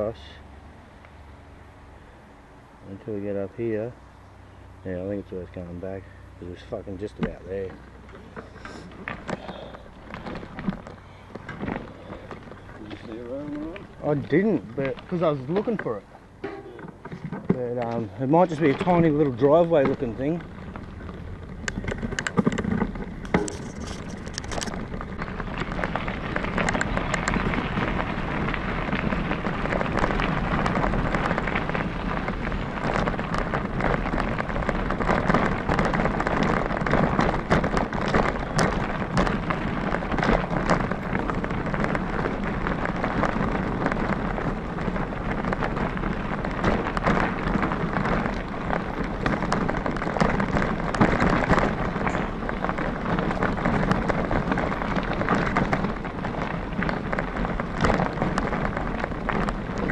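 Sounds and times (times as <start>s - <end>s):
bicycle tyres rolling on gravel: 0.0s - 59.9s
bike rattling: 2.8s - 59.9s.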